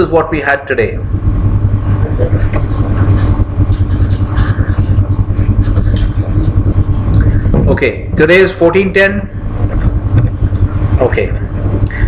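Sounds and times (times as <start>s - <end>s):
low bass rumble: 0.0s - 12.0s.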